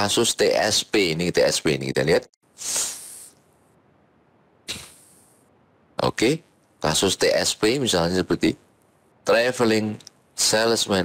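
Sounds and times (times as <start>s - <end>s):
breaths into a microphone: 2.6s - 3.4s.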